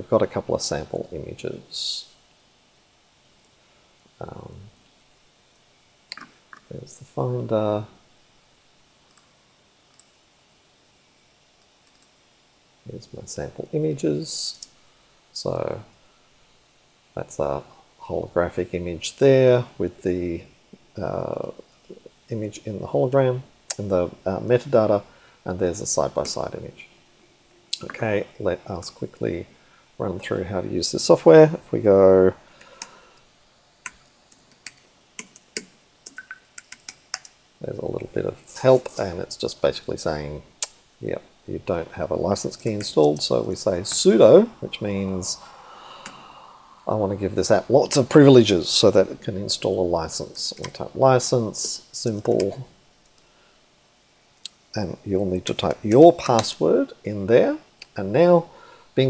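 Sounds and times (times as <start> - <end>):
computer mouse clicks: 33.8 - 37.4.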